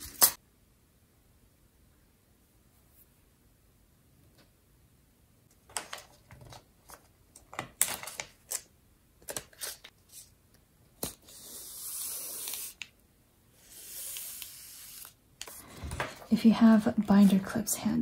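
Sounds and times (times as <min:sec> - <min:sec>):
paper crinkling and clicking: 0:05.7 - 0:09.9.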